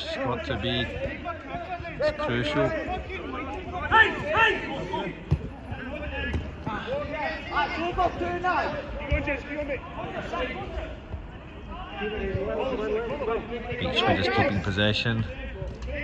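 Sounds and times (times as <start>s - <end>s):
men calling and shouting: 0.0s - 16.0s
football being kicked: 5.2s - 5.6s.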